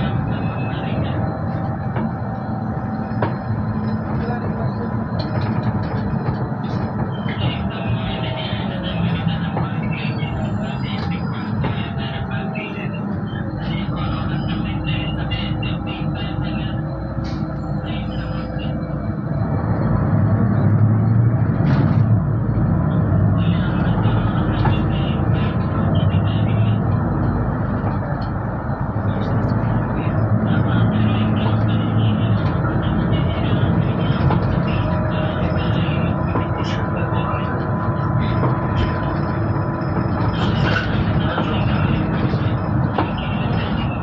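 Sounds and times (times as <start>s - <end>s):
bus engine and road noise: 0.0s - 44.0s.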